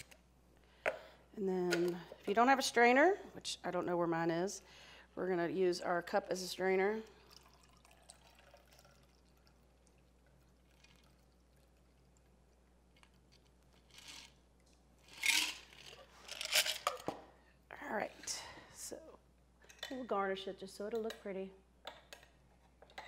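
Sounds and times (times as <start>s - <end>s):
cocktail pouring trickle: 7.0s - 12.6s.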